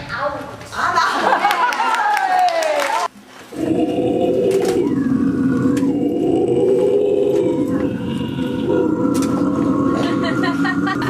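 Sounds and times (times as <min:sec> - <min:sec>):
distorted electric guitars droning: 0:03.6 - 0:11.0.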